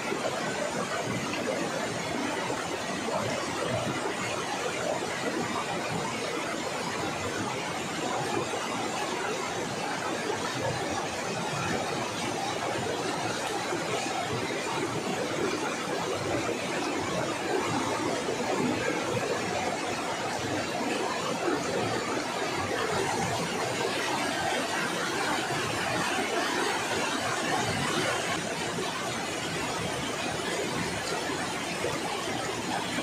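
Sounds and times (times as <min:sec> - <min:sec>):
rocky river rushing: 0:11.4 - 0:33.0.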